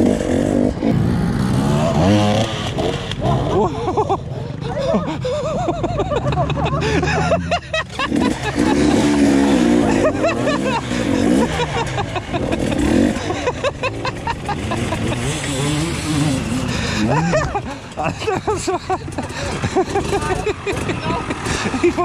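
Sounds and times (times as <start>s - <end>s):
dirt bike engines revving: 0.0s - 22.0s
people laughing: 3.2s - 22.0s.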